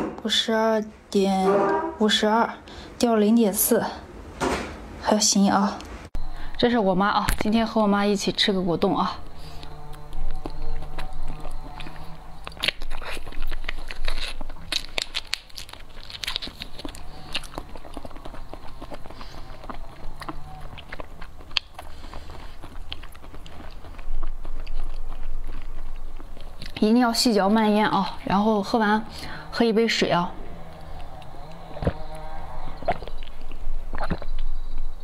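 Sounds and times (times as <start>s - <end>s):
wet mouth clicks and smacks: 32.9s - 34.5s.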